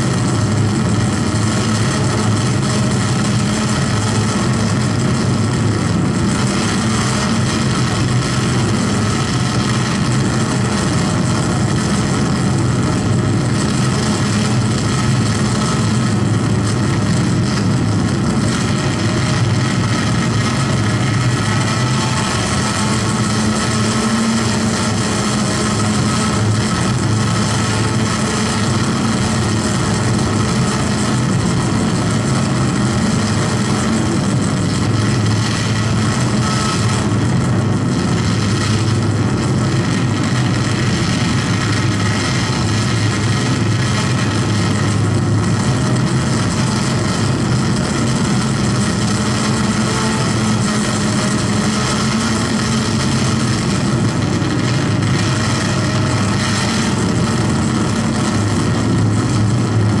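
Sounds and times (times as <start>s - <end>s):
loud mechanical hum: 0.0s - 60.0s.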